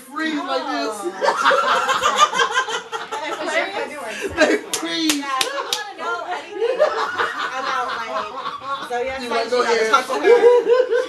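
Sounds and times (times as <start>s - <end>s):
people talking: 0.0s - 11.0s
people laughing: 0.8s - 11.0s.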